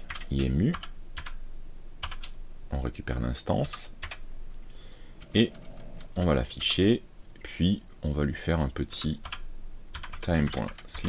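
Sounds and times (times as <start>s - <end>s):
computer keyboard keystrokes: 0.1s - 1.4s, 2.0s - 2.4s, 3.7s - 4.2s, 9.2s - 11.0s.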